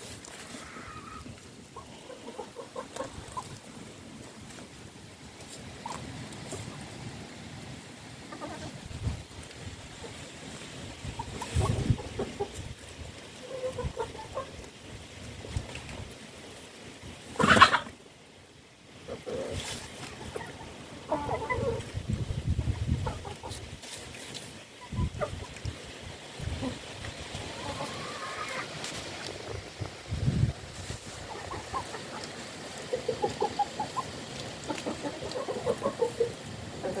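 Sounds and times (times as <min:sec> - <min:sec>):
chickens clucking: 0:00.0 - 0:07.2, 0:07.9 - 0:18.2, 0:19.0 - 0:37.0.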